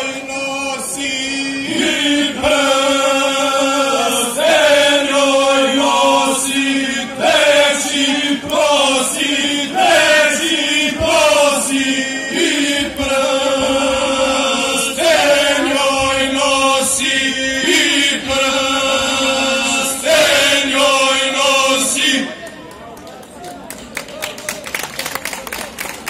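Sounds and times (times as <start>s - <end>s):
male vocal group singing: 0.0s - 22.4s.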